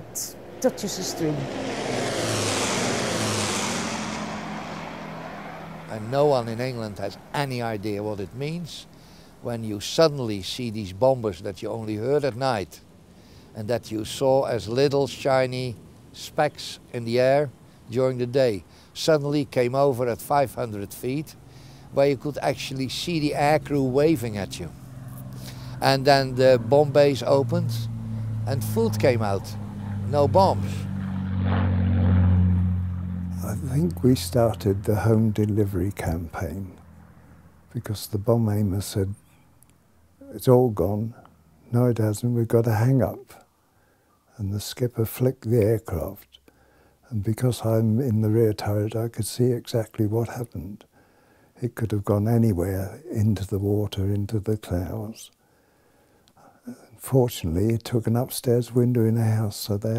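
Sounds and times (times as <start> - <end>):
propeller engines droning: 0.0 - 41.7.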